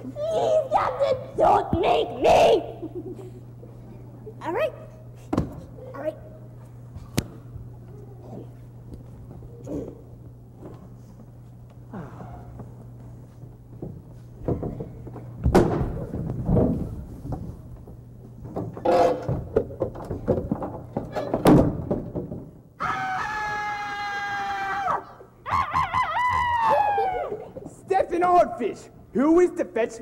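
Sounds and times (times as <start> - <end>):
thuds and knocks: 14.4 - 17.5, 18.5 - 22.5.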